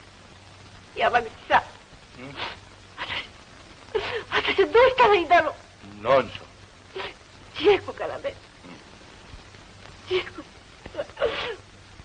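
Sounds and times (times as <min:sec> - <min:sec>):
woman sobbing: 0:03.0 - 0:05.1, 0:07.0 - 0:07.2, 0:10.0 - 0:11.7.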